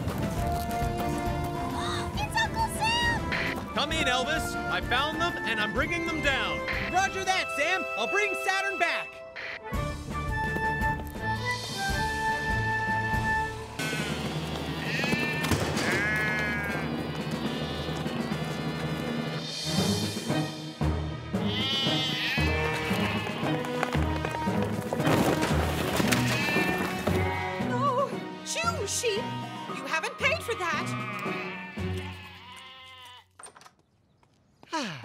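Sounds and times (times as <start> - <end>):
background music: 0.0 - 32.7
sheep bleating: 13.8 - 18.3, 21.4 - 23.8, 26.0 - 27.8, 30.2 - 33.3.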